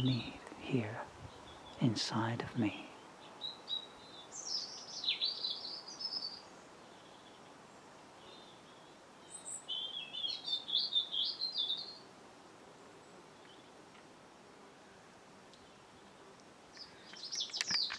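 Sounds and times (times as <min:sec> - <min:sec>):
faint steady hiss: 0:00.0 - 0:17.9
songbird warbling: 0:08.2 - 0:12.0, 0:16.7 - 0:17.9.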